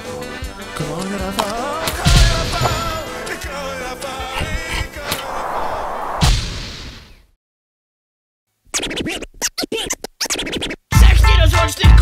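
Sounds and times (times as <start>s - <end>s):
record scratching: 4.4s - 6.4s, 8.7s - 10.8s
hip hop beat with heavy bass: 10.9s - 12.0s.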